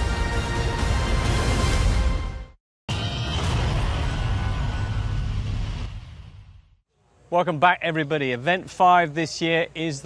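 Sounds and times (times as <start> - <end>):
deep rumbling crash: 2.9 - 6.8.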